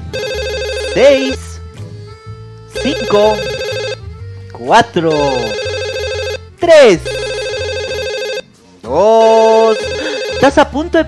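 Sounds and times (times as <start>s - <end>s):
telephone warbling ring: 0.1s - 1.2s, 2.8s - 4.1s, 5.1s - 6.4s, 7.1s - 8.4s, 9.6s - 10.6s.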